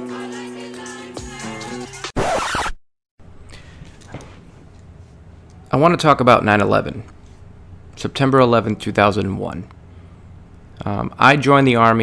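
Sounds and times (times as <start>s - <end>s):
scratching noise effect: 2.0s - 2.8s.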